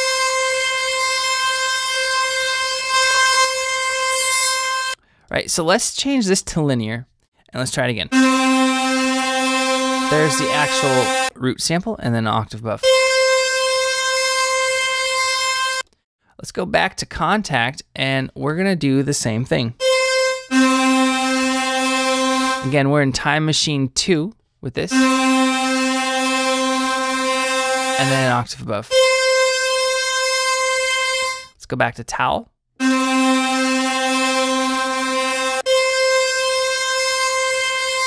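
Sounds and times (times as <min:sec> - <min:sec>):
bright held synth note: 0:00.0 - 0:05.0, 0:08.1 - 0:11.3, 0:19.8 - 0:22.7, 0:24.9 - 0:31.5, 0:32.8 - 0:38.0
sustained sampled instrument tone: 0:00.0 - 0:05.0, 0:08.1 - 0:11.3, 0:19.8 - 0:22.7, 0:24.9 - 0:31.5, 0:32.8 - 0:38.0.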